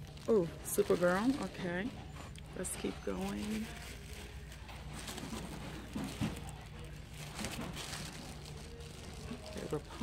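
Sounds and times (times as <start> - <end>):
low store hum: 0.0 - 10.0
plastic bags crinkling: 0.0 - 10.0
faint voices: 0.2 - 10.0.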